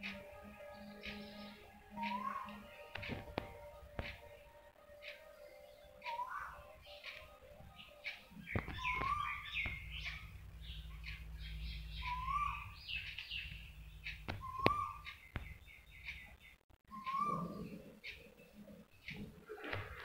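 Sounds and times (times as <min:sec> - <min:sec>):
low steady hum: 0:00.0 - 0:19.5
birds chirping: 0:00.0 - 0:20.0
sharp clicks: 0:06.8 - 0:17.3
short repeating bird call: 0:12.0 - 0:13.6.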